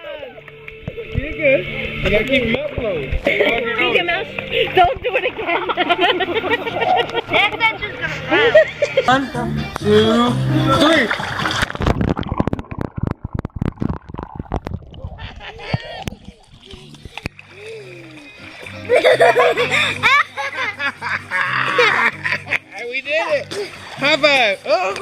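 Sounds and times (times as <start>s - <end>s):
background music: 0.0s - 11.9s, 16.7s - 25.0s
bubbling churning pool water: 10.8s - 20.0s, 23.3s - 25.0s.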